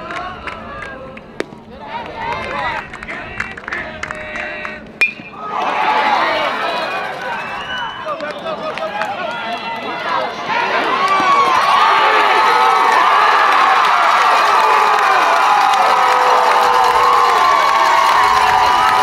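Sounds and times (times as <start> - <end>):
metal bat hitting ball: 5.0 - 5.4
crowd shouting and yelling: 5.0 - 19.0.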